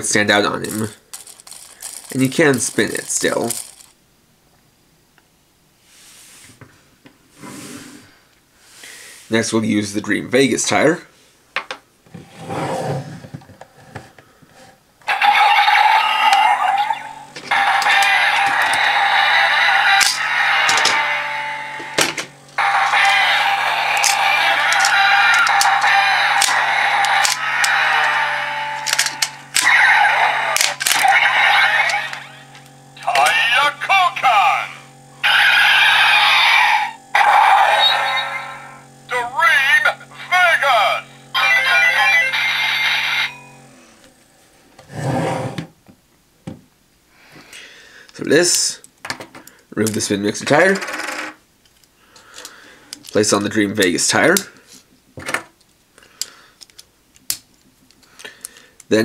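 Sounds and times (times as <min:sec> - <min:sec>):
electronic voice calls: 0:15.1 - 0:43.7
electronic toy standby tune: 0:15.1 - 0:43.9.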